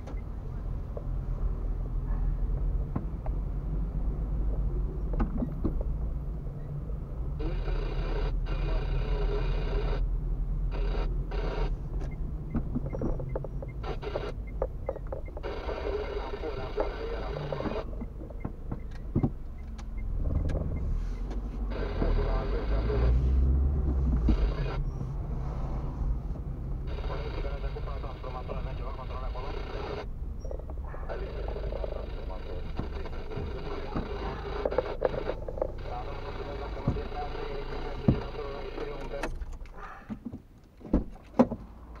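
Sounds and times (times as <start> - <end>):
car engine and tyre rumble: 0.0 - 42.0
sharp clicks: 16.8 - 21.4
person speaking: 26.9 - 40.0.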